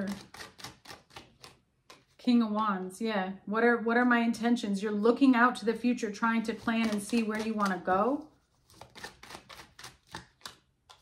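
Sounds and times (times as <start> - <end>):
cards being shuffled: 0.0 - 2.2, 6.5 - 11.0.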